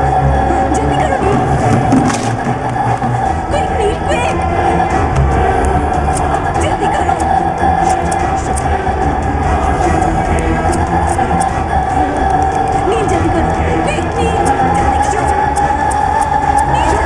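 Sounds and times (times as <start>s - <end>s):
tense rumbling drone: 0.0s - 17.0s.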